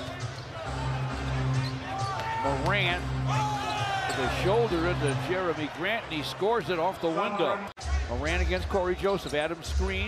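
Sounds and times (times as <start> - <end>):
pulsing bass arena music: 0.0 - 7.0, 7.8 - 10.0.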